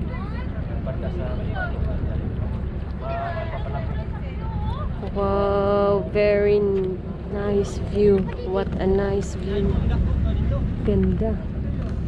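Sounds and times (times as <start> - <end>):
motorboat engine running: 0.0 - 12.0
wind rumbling on microphone: 0.0 - 12.0.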